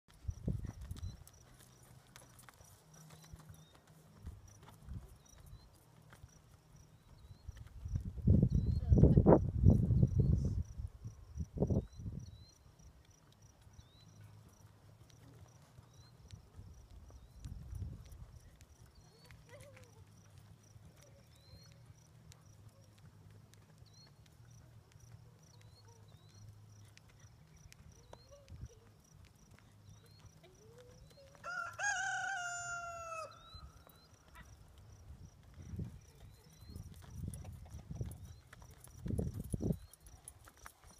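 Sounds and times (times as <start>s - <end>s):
hoofbeats on soft dirt: 0.1s - 40.9s.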